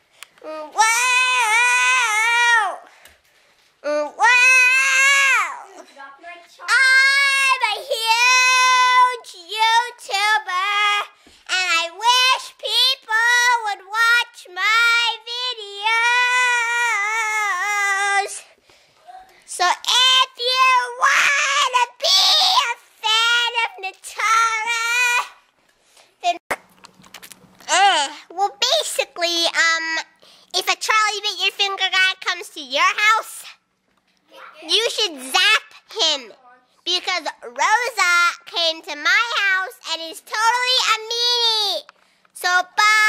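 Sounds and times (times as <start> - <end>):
girl singing in a high voice: 0.4 - 3.0, 3.8 - 18.6, 19.5 - 25.4, 36.9 - 43.0.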